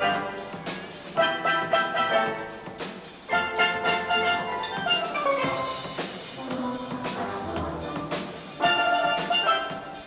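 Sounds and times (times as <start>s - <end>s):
steel band playing: 0.0s - 10.0s.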